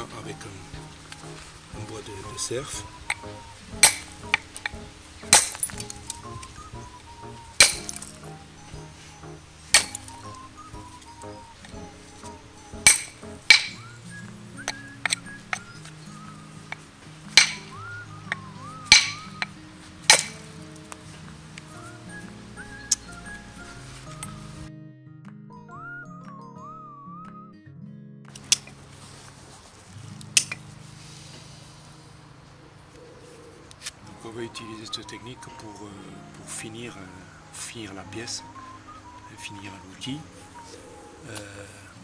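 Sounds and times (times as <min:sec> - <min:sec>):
antler striking stone clinks: 0:03.8 - 0:04.4, 0:05.3 - 0:06.2, 0:07.6 - 0:08.2, 0:09.7 - 0:10.1, 0:12.8 - 0:13.8, 0:17.4 - 0:17.8, 0:18.9 - 0:19.2, 0:20.1 - 0:20.4.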